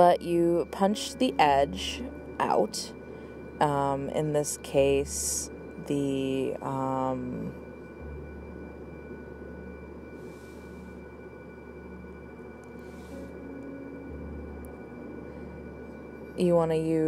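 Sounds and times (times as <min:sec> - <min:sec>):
faint high whining tones: 0:00.0 - 0:17.0
low electrical hum: 0:00.0 - 0:17.0.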